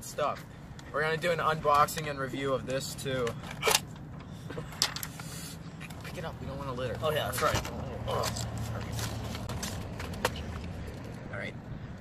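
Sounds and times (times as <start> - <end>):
low traffic hum: 0.0 - 12.0.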